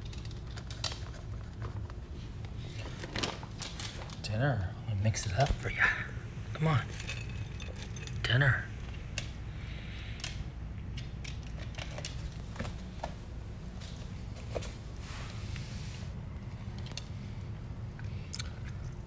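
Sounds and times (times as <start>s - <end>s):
dog crunching kibble: 0.0s - 4.4s.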